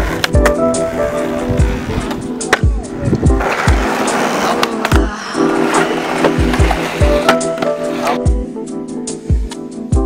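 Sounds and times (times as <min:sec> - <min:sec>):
skateboard grinding on concrete: 0:00.0 - 0:08.4
background music with steady beat: 0:00.0 - 0:10.0
skateboard clack: 0:01.6 - 0:08.2.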